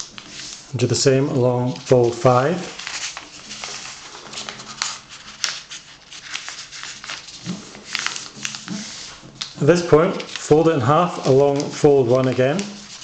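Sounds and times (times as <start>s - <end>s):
fingers scraping along paper fold: 0.0s - 13.0s
paper rustling and crinkling: 0.0s - 13.0s.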